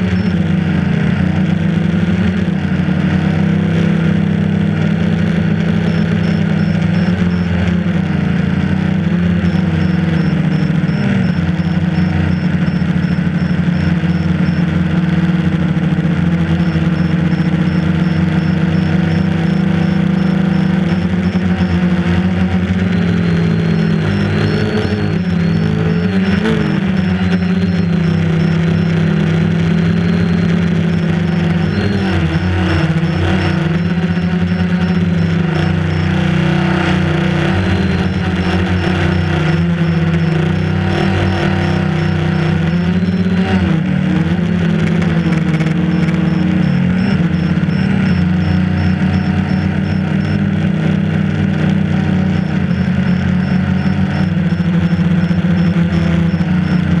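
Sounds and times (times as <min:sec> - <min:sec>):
faint high pulsing tone: 0:00.0 - 0:02.0, 0:03.2 - 0:57.0
drone propellers whining: 0:00.0 - 0:57.0.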